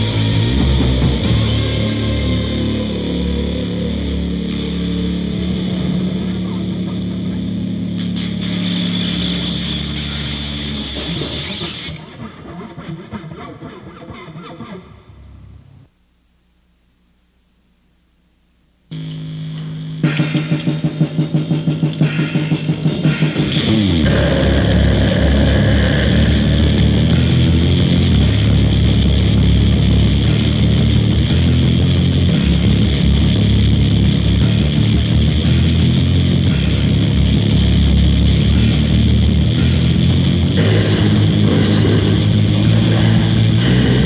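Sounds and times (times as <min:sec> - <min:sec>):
metal band playing: 0:00.0 - 0:14.1, 0:18.9 - 0:44.0
fast electric guitar riff: 0:00.0 - 0:15.9, 0:18.9 - 0:44.0
held electric guitar note: 0:01.2 - 0:08.6, 0:22.0 - 0:44.0.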